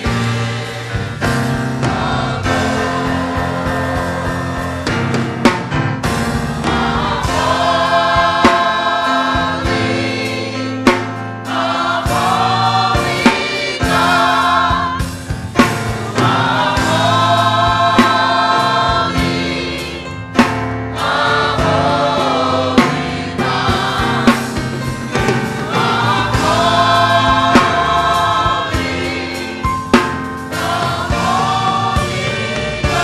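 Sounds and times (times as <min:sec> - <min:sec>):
sharp drum hits: 0:00.0 - 0:10.1, 0:12.0 - 0:19.6, 0:20.4 - 0:33.0
church band playing: 0:00.0 - 0:33.0
gospel choir singing: 0:00.0 - 0:33.0.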